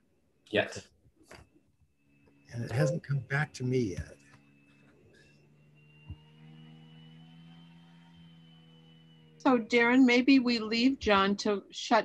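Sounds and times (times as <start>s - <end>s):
faint steady hum: 1.6s - 12.0s.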